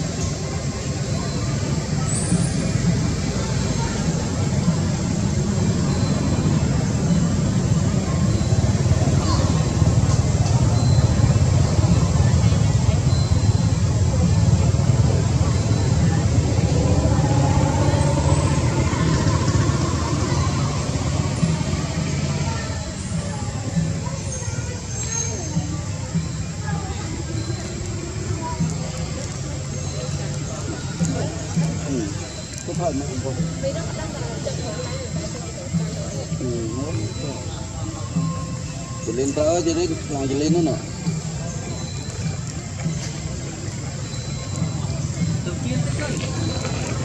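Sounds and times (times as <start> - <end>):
low rumbling noise: 0.0 - 24.9
indistinct voices: 0.0 - 47.0.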